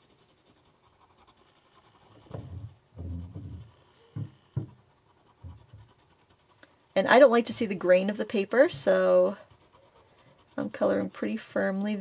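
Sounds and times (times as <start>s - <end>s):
pencil rubbing on paper: 0.0s - 12.0s.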